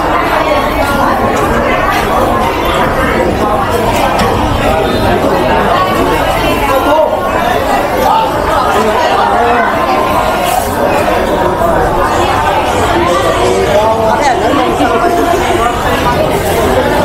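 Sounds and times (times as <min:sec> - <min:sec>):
babble of voices: 0:00.0 - 0:17.0.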